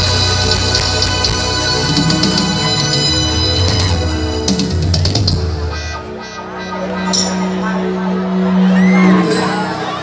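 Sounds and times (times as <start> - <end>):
live brass band music: 0.0 - 10.0.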